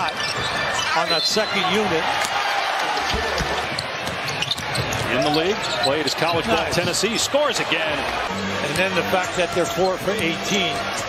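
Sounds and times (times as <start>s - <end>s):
arena crowd noise: 0.0s - 11.0s
basketball bouncing on hardwood: 3.0s - 5.4s.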